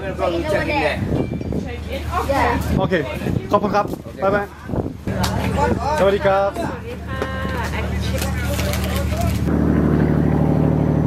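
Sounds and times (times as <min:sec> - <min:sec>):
voices: 0:00.0 - 0:09.5
ferry engine drone: 0:06.7 - 0:11.0.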